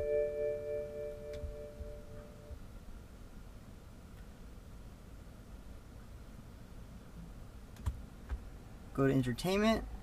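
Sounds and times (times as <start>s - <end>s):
faint low cabin hum: 0.0s - 10.0s.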